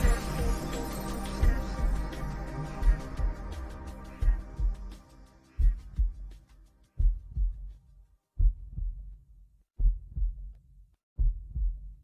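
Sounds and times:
music: 0:00.0 - 0:08.8
low double thumps: 0:08.4 - 0:09.2, 0:09.8 - 0:10.5, 0:11.2 - 0:12.0.

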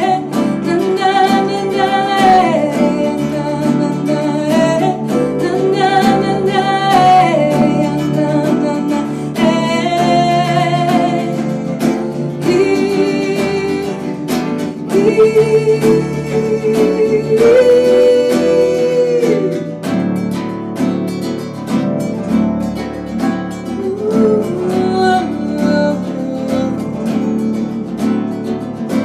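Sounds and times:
woman singing: 0:00.0 - 0:20.4, 0:23.5 - 0:29.0
acoustic guitar: 0:00.0 - 0:29.0.

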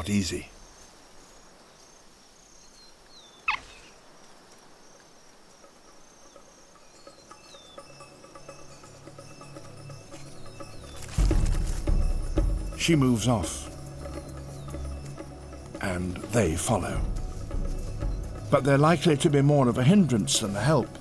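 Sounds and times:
faint high bird chirps: 0:00.0 - 0:19.1
soft sustained music: 0:04.9 - 0:21.0.

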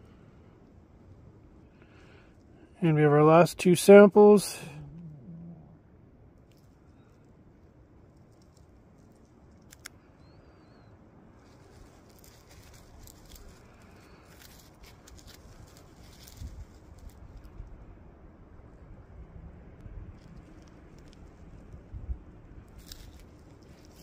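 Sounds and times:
faint high chirp: 0:10.1 - 0:11.0.

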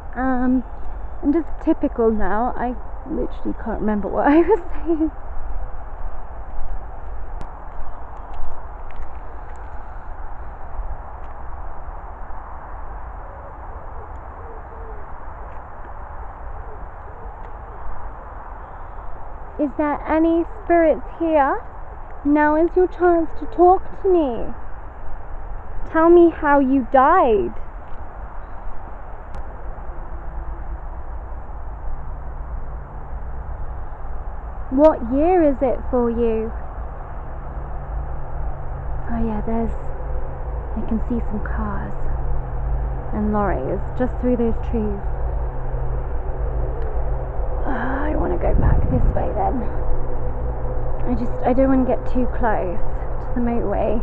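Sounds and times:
distant motorway traffic roar: 0:00.0 - 0:54.0
wind and handling rumble on microphone: 0:00.0 - 0:54.0.

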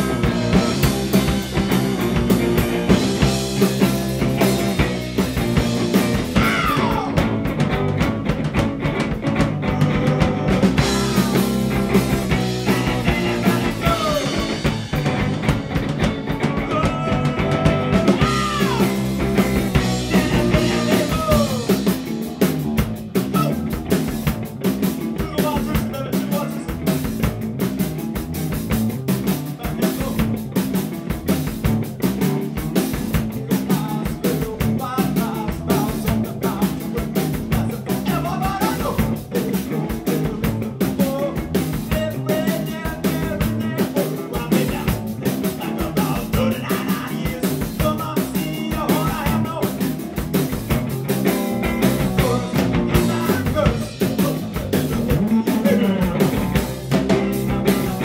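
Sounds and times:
drum kit beat: 0:00.0 - 0:58.0
electric bass: 0:00.0 - 0:58.0
electric guitar: 0:00.0 - 0:58.0.

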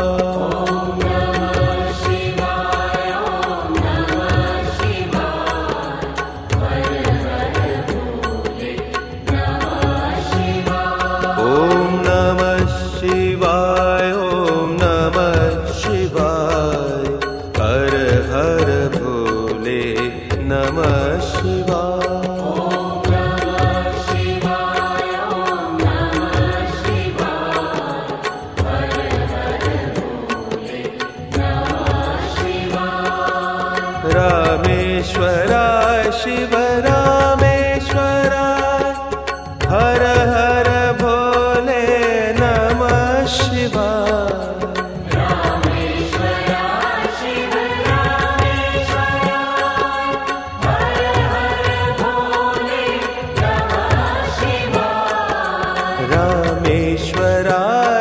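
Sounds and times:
person singing a chant-like melody: 0:00.0 - 0:58.0.

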